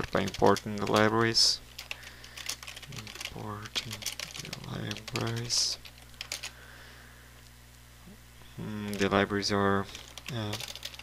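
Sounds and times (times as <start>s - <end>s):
computer keyboard keystrokes: 0.0s - 6.6s, 9.9s - 11.0s
faint low electrical hum: 0.0s - 11.0s.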